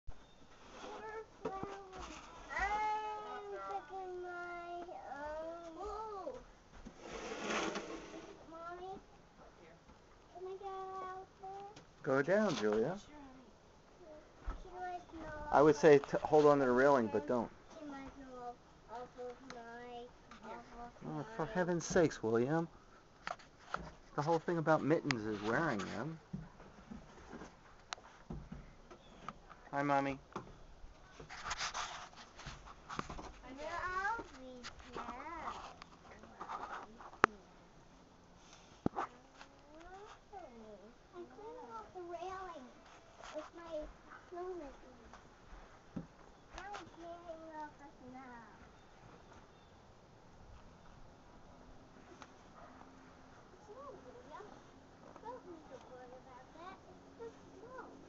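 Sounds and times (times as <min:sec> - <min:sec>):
young child's wordless voice: 0:00.7 - 0:06.5, 0:08.0 - 0:09.2, 0:10.3 - 0:22.0, 0:33.2 - 0:37.6, 0:38.9 - 0:45.3, 0:46.5 - 0:48.8, 0:53.5 - 0:58.0
scrape of snow: 0:07.0 - 0:08.4.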